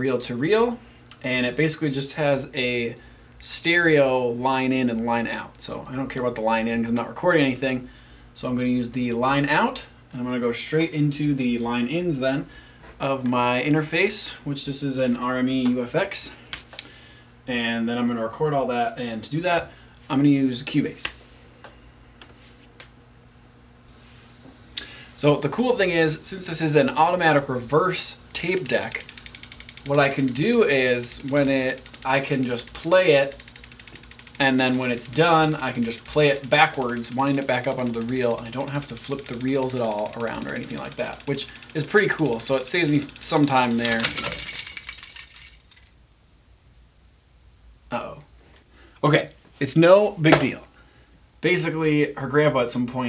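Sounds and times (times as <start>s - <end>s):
low steady hum: 0.0s - 53.0s
tape reel fine clicking: 23.9s - 46.0s.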